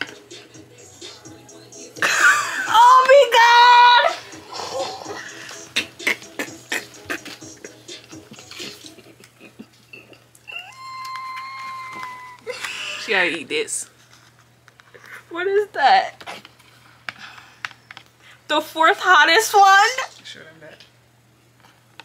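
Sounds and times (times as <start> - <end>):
steady high tone: 10.5 - 12.5
woman squealing: 10.5 - 13.0.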